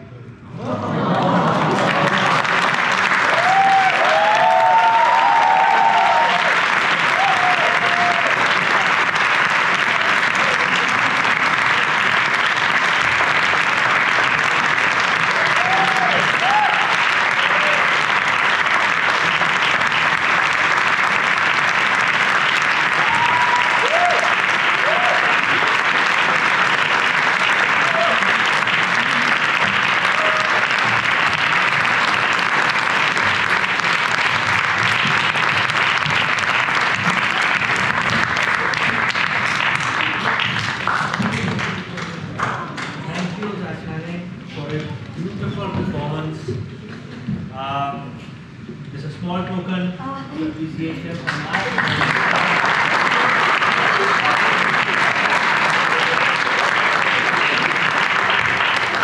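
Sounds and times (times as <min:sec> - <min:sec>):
audience applauding: 0:00.6 - 0:43.5, 0:51.1 - 0:59.0
voices cheering: 0:03.2 - 0:08.8, 0:15.2 - 0:18.2, 0:22.8 - 0:25.8, 0:27.6 - 0:31.0.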